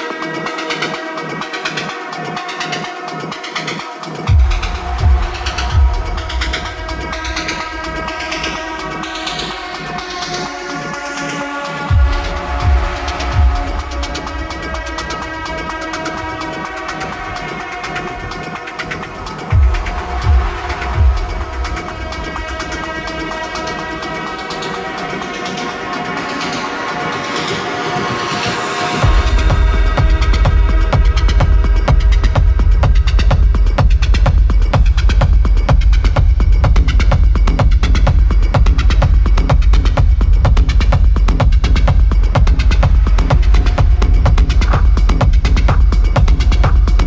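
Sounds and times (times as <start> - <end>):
ticking hi-hat: 0.0 - 47.0
light bass: 4.3 - 10.2, 11.9 - 24.9, 29.0 - 47.0
rising noise sweep: 4.3 - 31.5
horn-like synth chord: 4.3 - 32.8.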